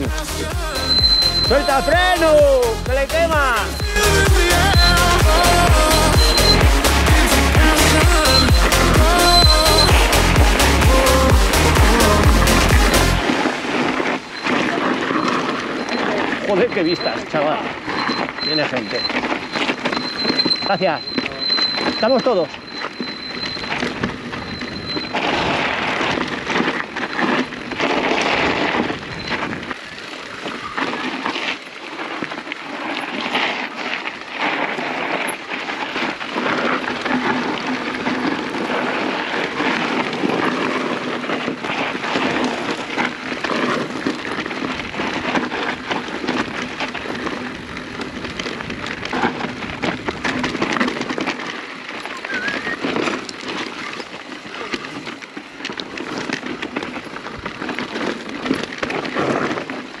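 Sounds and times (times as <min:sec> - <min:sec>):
tyres crunching over gravel: 0:00.0 - 1:00.0
bike clattering over bumps: 0:06.8 - 1:00.0.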